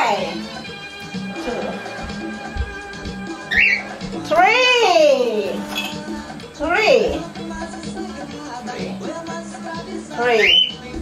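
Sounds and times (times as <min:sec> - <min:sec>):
latin song from radio: 0:00.0 - 0:11.0
cockatiel chirp: 0:03.5 - 0:03.9, 0:10.4 - 0:10.8.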